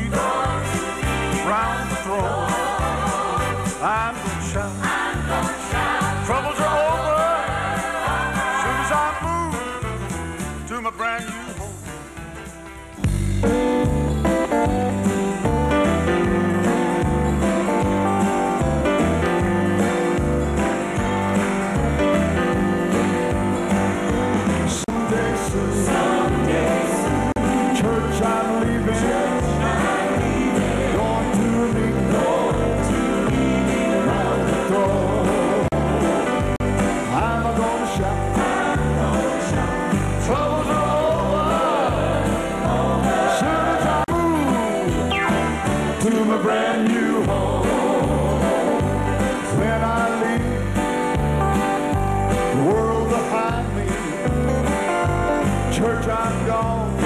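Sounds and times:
choir singing gospel song: 0.0 - 9.7, 22.8 - 44.1, 45.5 - 51.1
instrumental backing with bass: 0.0 - 57.0.

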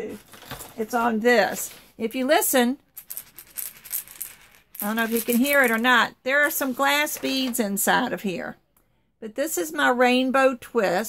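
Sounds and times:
beads rattling in shaken egg: 2.9 - 6.0
person speaking: 4.8 - 8.5.

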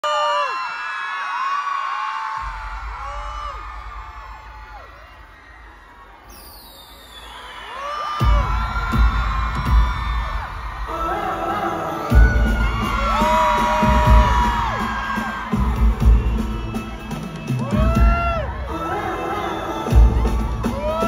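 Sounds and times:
crowd screaming and cheering: 0.0 - 21.0
music over pa: 8.2 - 21.0.

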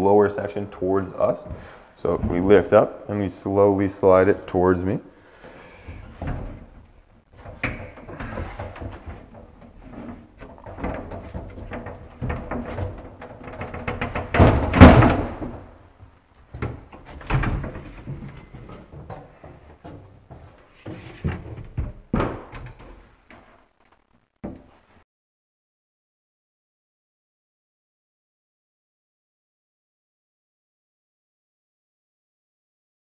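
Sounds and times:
wooden panel bumping and knocking: 7.4 - 15.8, 16.5 - 23.0.

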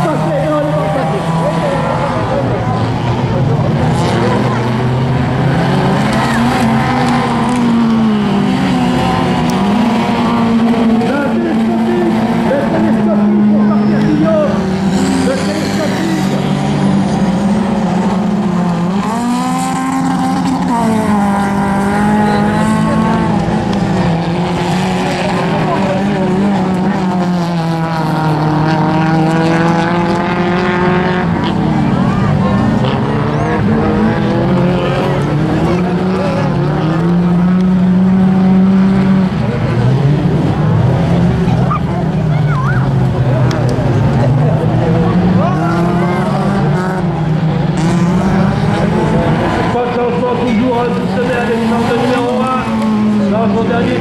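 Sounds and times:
race car engines running hard: 0.0 - 54.0.

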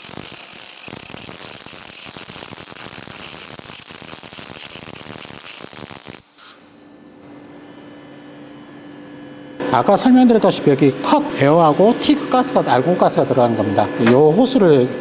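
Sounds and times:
welding arc crackling: 0.0 - 6.6
steady hum: 0.0 - 15.0.

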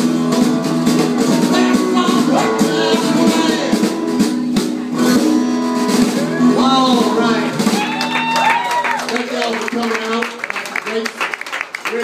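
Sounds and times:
person singing: 0.0 - 5.2, 6.2 - 8.0
country band playing: 0.0 - 12.0.

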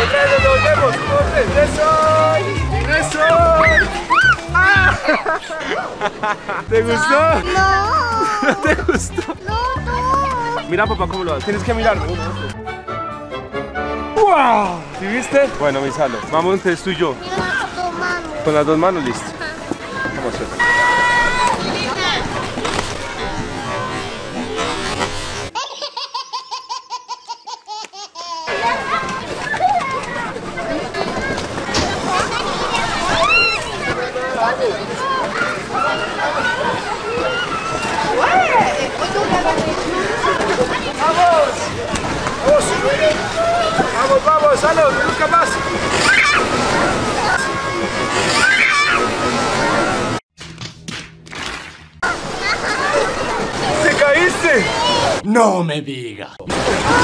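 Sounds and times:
crowd voices at ice rink: 0.0 - 25.6, 28.5 - 50.2, 52.0 - 57.0
baby laughing hard: 7.4 - 10.5, 25.5 - 28.9
ice skate blades scraping: 44.8 - 46.6, 48.1 - 48.6.

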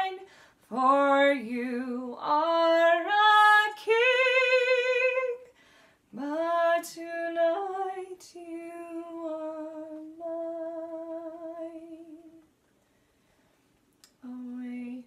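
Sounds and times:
woman singing lullaby: 0.0 - 5.4, 6.2 - 12.4, 14.2 - 15.0.

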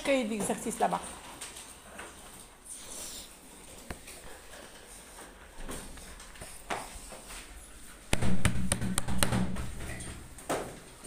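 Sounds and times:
sharp knocks: 8.1 - 9.8.

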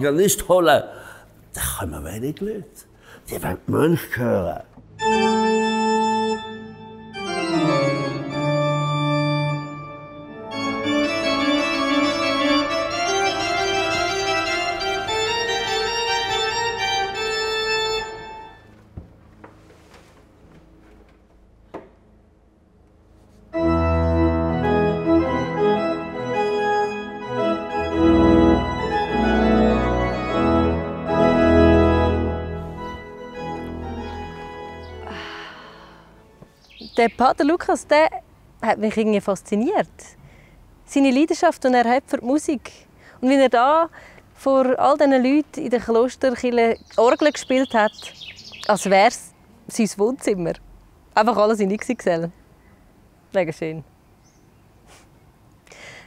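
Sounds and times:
pipe organ playing chords: 4.9 - 21.6, 22.2 - 37.0.

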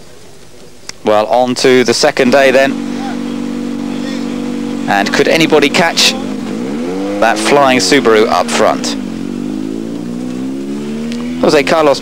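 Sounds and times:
car engine idling: 1.7 - 12.0.

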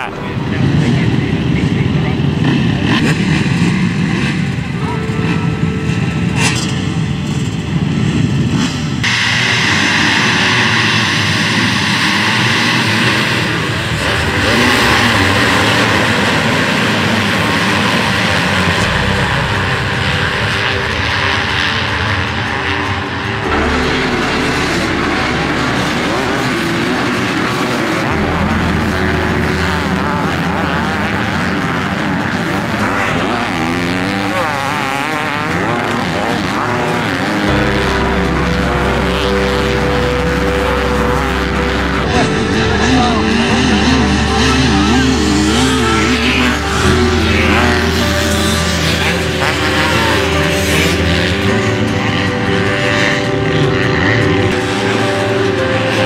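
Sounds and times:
motocross bike engines revving: 0.0 - 56.0.

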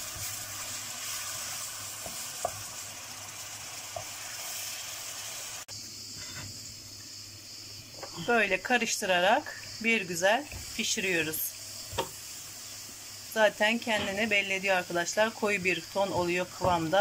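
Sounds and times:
sizzling hiss: 0.0 - 17.0.

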